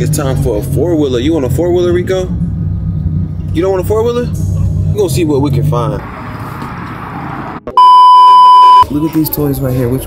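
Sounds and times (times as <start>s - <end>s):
censor bleep: 7.8s - 8.8s.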